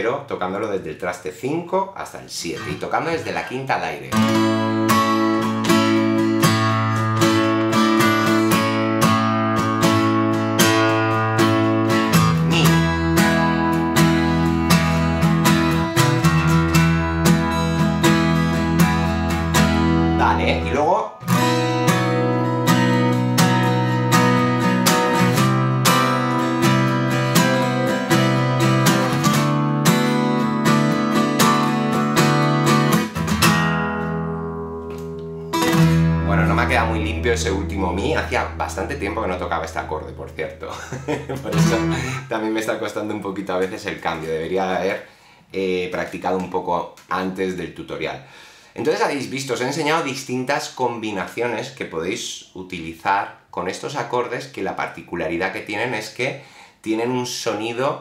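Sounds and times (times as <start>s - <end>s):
acoustic guitar strumming: 4.1s - 42.3s.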